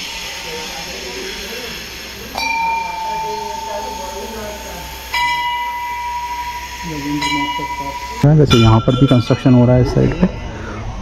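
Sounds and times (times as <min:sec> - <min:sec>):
metal bell ringing: 0:02.3 - 0:10.6.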